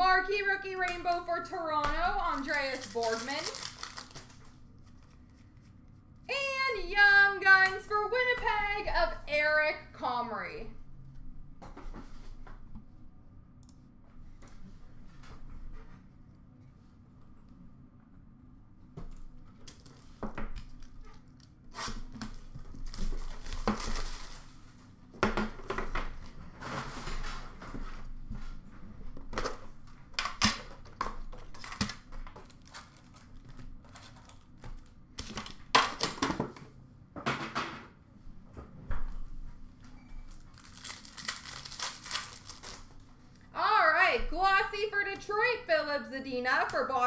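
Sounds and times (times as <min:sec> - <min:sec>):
card wrappers tearing and crinkling: 0:02.2 - 0:05.2, 0:20.7 - 0:24.5, 0:31.3 - 0:36.2, 0:40.3 - 0:43.0.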